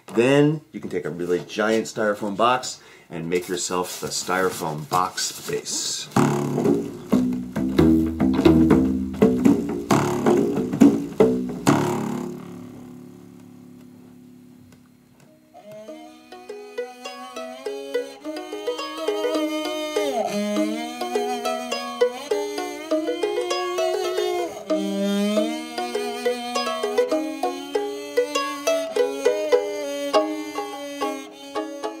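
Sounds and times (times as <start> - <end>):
plucked-string tune with bending notes: 6.1 - 32.0
rubber bands plucked on a box: 6.2 - 12.4.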